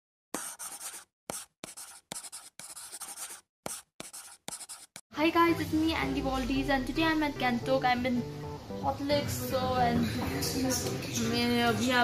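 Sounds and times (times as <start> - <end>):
pen scratching on paper: 0.3 - 5.0.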